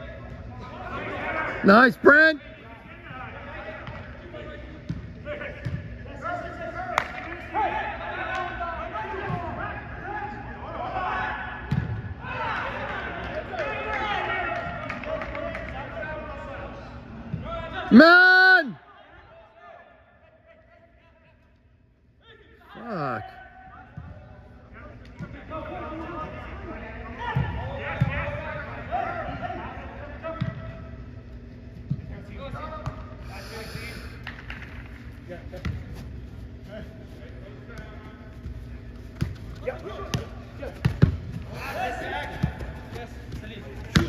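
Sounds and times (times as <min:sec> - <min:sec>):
players shouting: 0:17.6 - 0:18.8.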